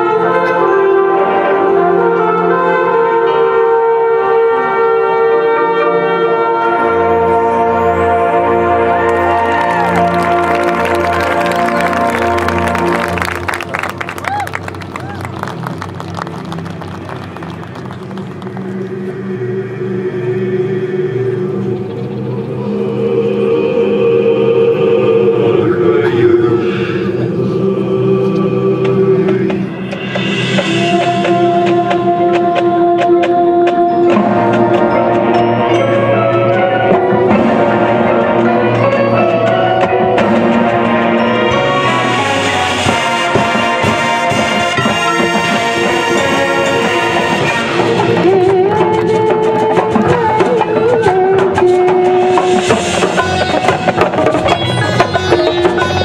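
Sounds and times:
marching band holding a chord: 0.0 - 56.0.

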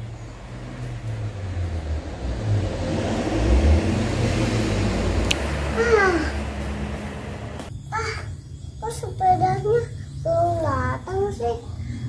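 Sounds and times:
low engine rumble: 0.0 - 7.7.

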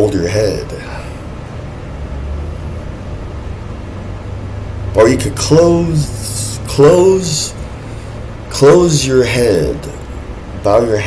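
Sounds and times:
faint hum: 0.0 - 11.0
low background rumble: 0.0 - 11.0.

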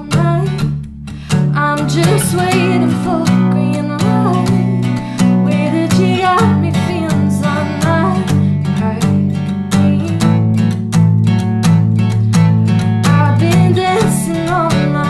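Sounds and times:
woman singing wordless notes: 0.0 - 0.6, 1.6 - 10.3, 13.1 - 15.0
acoustic guitar strumming: 0.0 - 15.0.

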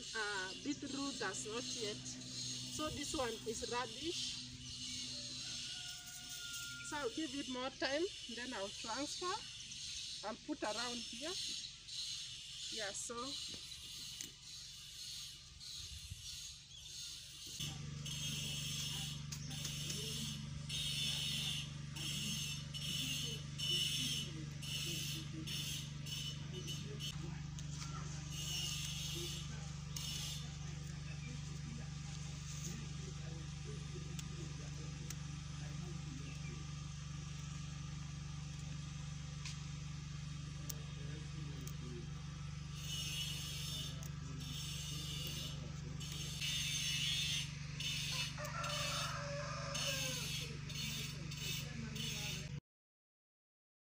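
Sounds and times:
steady low hum: 0.0 - 52.6.

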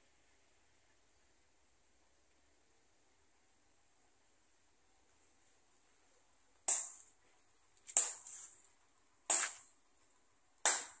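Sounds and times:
hammer striking steel chisel: 6.6 - 7.1, 7.9 - 8.5, 9.3 - 9.7, 10.6 - 11.0.

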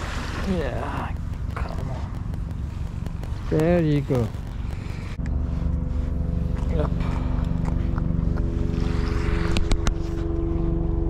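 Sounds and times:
motorboat engine humming: 0.0 - 11.0
sharp clicks: 0.4 - 5.4.

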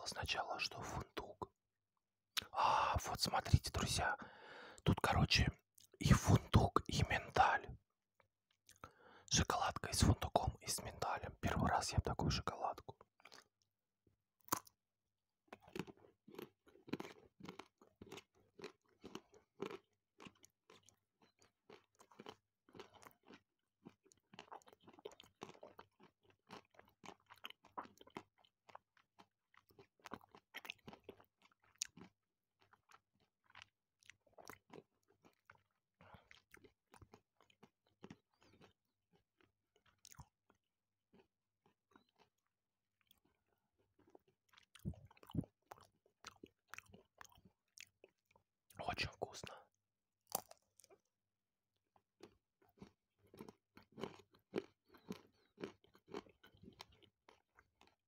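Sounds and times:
chewing wet mouth sounds: 2.4 - 7.8, 8.7 - 13.6, 15.5 - 42.4, 43.0 - 49.7, 50.3 - 51.1, 52.2 - 58.0.

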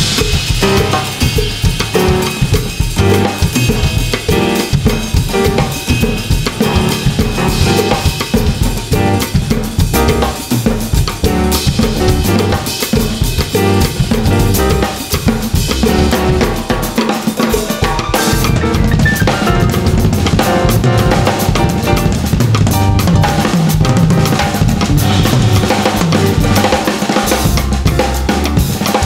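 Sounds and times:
bass drums: 0.0 - 29.0
snare drums: 0.0 - 29.0.

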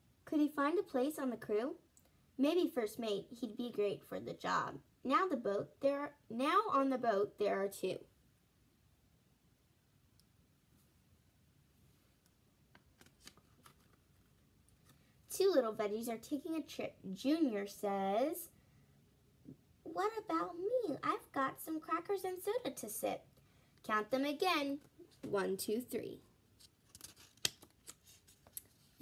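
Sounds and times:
soft clicks of page turning: 12.2 - 15.1, 26.6 - 28.8
paper rustling: 12.8 - 15.0, 26.6 - 29.0.

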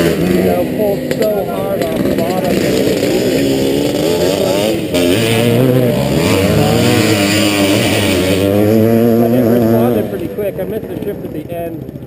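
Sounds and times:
dirt bike engine idling: 0.0 - 12.0.

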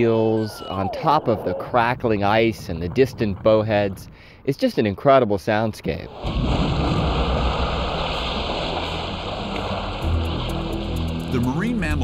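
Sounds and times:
sea water splashing: 6.1 - 12.0
low sustained music notes: 8.6 - 12.0.

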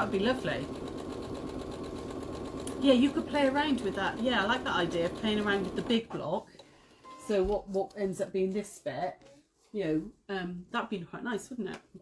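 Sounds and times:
sewing machine running: 0.0 - 6.1.

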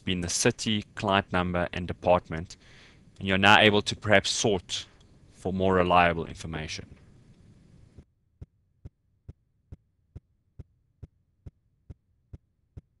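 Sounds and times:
faint hiss: 0.0 - 8.0.

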